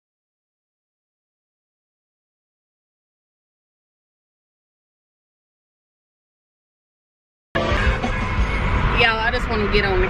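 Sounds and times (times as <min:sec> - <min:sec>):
car road and wind rumble: 0:07.6 - 0:10.0
music: 0:07.6 - 0:10.0.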